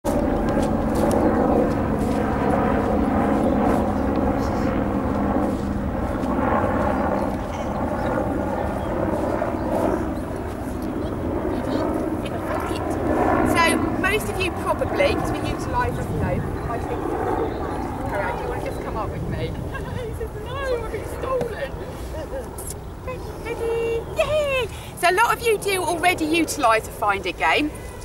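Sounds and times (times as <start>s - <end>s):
engine drone: 0.1s - 19.6s.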